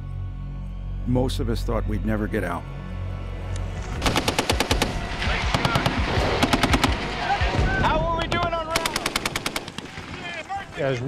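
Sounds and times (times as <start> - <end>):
machine-gun fire bursts: 4.0 - 7.6, 8.7 - 10.3.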